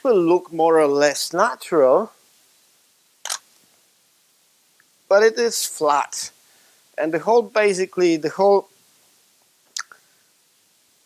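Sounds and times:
camera shutter click: 0:03.2 - 0:03.5.

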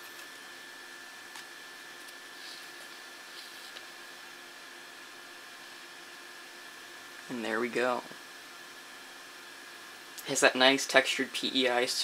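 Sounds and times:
faint steady whine: 0:00.0 - 0:12.0.

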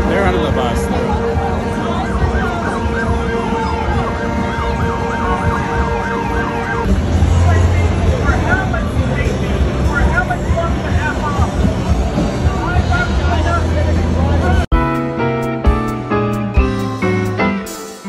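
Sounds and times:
traffic noise: 0:00.0 - 0:14.7
crowd noise: 0:00.0 - 0:18.0
emergency siren yelping: 0:01.1 - 0:06.9.

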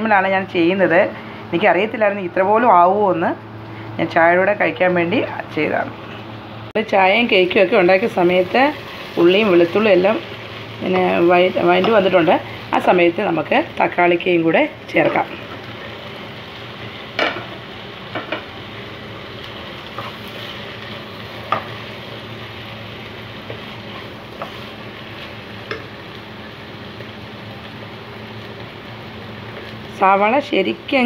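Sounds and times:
onions sizzling in a pan: 0:06.7 - 0:31.0
wooden spatula scraping a pan: 0:23.4 - 0:25.4.

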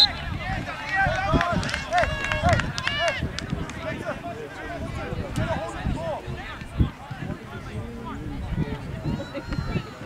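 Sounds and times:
voices shouting and calling: 0:00.0 - 0:10.0.

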